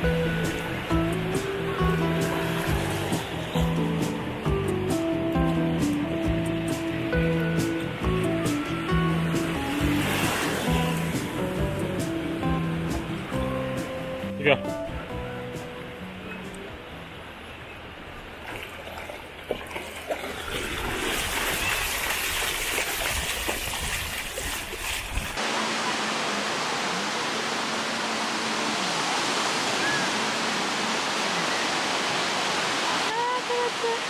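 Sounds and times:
small waves breaking on beach: 0:00.0 - 0:04.3, 0:09.3 - 0:11.5, 0:17.6 - 0:34.0
seawater sloshing around dog: 0:09.7 - 0:11.2, 0:18.4 - 0:25.4.

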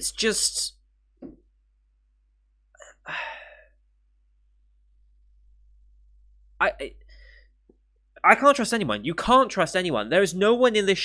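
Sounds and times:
man sighing: 0:02.8 - 0:03.6.

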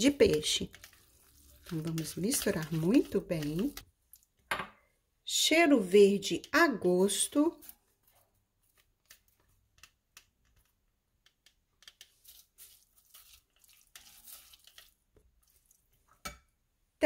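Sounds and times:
spatula stirring wet mix in bowl: 0:00.0 - 0:04.5, 0:06.0 - 0:16.5.

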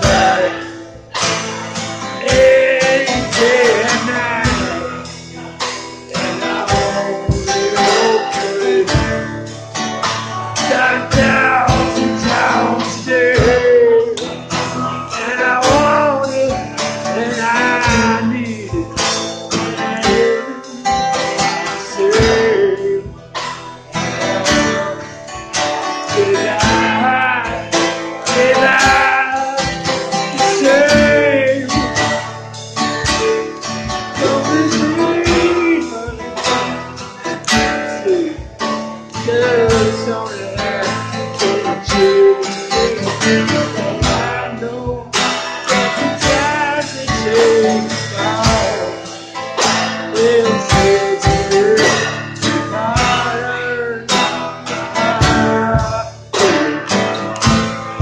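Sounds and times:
person singing: 0:00.0 - 0:09.6, 0:10.4 - 0:58.0
steady drum beat: 0:00.0 - 0:58.0
strummed acoustic guitar: 0:00.0 - 0:58.0.

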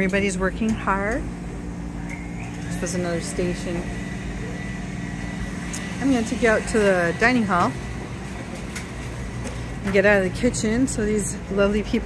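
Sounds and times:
kitchen equipment hum: 0:00.0 - 0:12.0
faint high whine: 0:01.4 - 0:07.8.

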